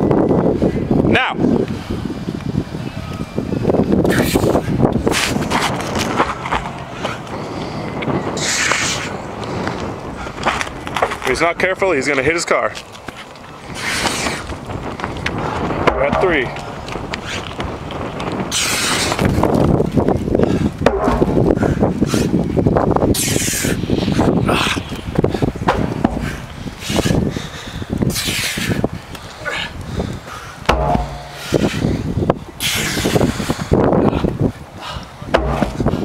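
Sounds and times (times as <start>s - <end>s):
wind noise on microphone: 0.0s - 36.0s
tractor tire flipping on pavement: 20.8s - 21.8s, 25.6s - 26.3s, 35.3s - 36.0s.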